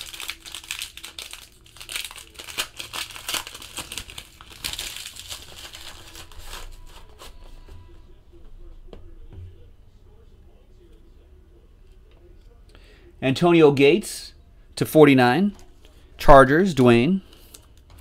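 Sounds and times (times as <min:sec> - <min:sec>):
foil wrapper crinkling and tearing: 0:00.0 - 0:07.3.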